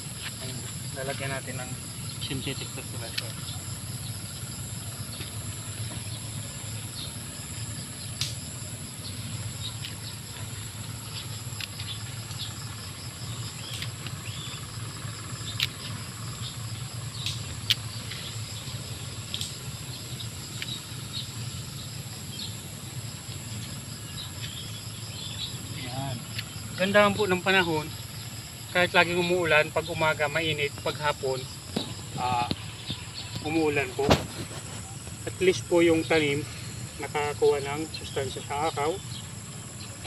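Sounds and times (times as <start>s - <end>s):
high-pitched insect chorus: 0.0s - 40.0s.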